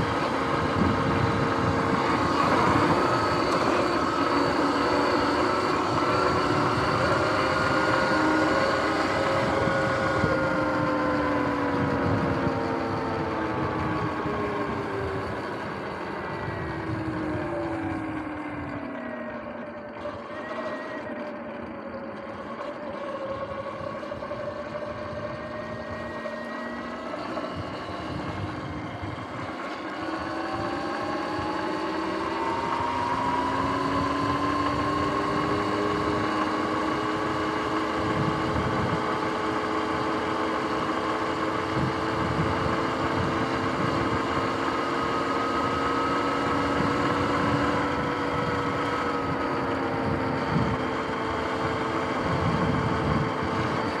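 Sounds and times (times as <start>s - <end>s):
wind buffeting on microphone: 0.0s - 18.6s, 27.4s - 40.2s, 41.4s - 44.6s, 46.2s - 54.0s
electric motor whine: 0.0s - 54.0s.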